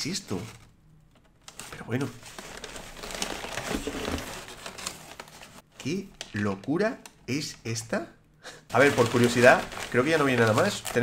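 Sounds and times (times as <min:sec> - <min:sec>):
packing paper crumpling: 0:01.4 - 0:06.5, 0:08.7 - 0:11.0.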